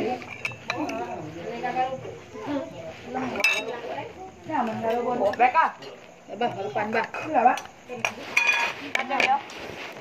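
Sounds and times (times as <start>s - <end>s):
dishes and cutlery clinking: 0.0s - 1.2s, 3.2s - 4.0s, 4.6s - 9.4s.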